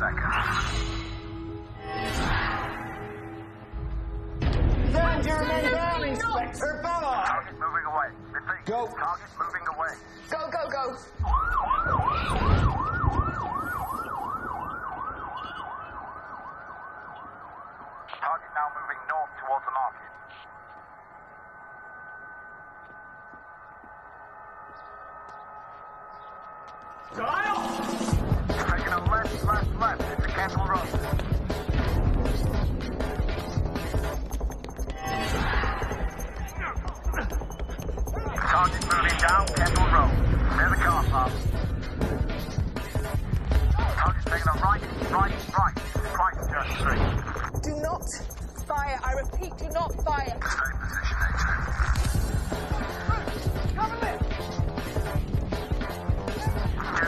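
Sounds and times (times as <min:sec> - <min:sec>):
action film music: 0:00.0 - 0:57.0
short siren chirps: 0:11.2 - 0:18.2
police siren yelping: 0:11.2 - 0:19.1
people shouting and crying out: 0:34.8 - 0:39.8, 0:51.3 - 0:54.6, 0:55.9 - 0:57.0.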